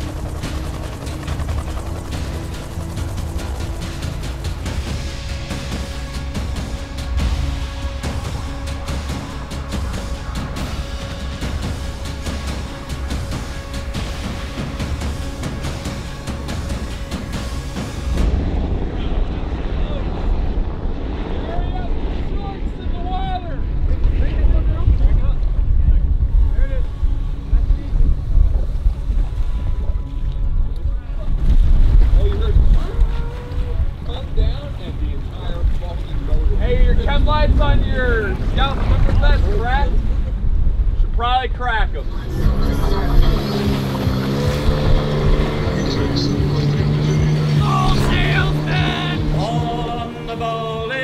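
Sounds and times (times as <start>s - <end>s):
background music: 0.0s - 21.4s, 23.6s - 51.0s
boat engines rumbling: 0.0s - 51.0s
choppy water: 0.0s - 51.0s
voices calling out: 42.0s - 51.0s.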